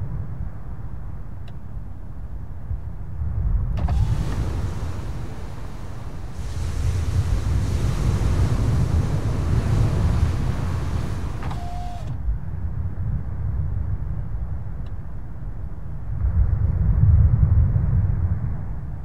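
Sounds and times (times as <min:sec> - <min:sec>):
low road rumble: 0:00.0 - 0:19.0
wind rushing into car: 0:02.4 - 0:19.0
power window motor whirring: 0:03.8 - 0:12.2.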